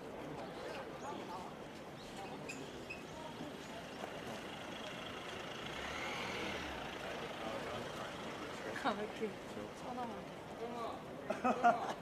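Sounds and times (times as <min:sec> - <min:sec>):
street traffic noise: 0:00.0 - 0:12.0
vehicle passing by: 0:04.3 - 0:08.8.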